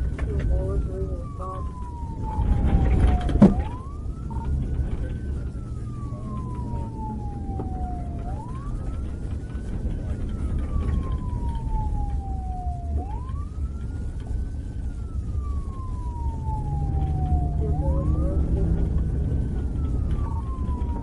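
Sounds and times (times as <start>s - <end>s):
car engine rumble: 0.0s - 21.0s
police siren wailing: 0.0s - 21.0s.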